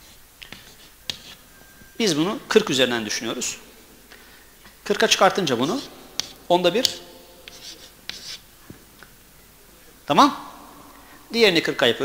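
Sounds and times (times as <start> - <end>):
chalk scraping on chalkboard: 0.0 - 1.5, 5.2 - 8.5.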